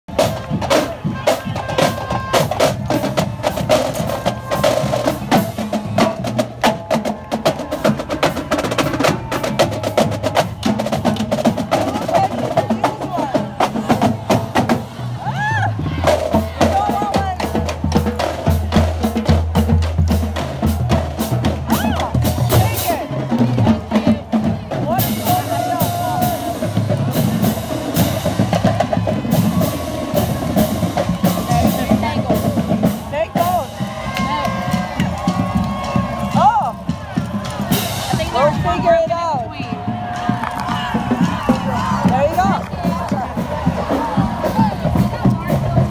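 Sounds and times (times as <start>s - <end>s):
drumline snare and bass drums: 0.1s - 45.9s.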